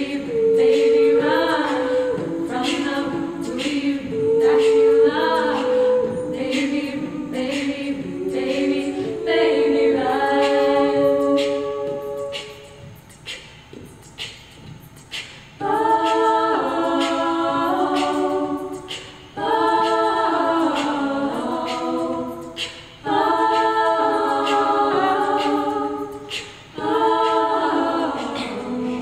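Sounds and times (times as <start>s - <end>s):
women singing in close harmony: 0.0s - 29.0s.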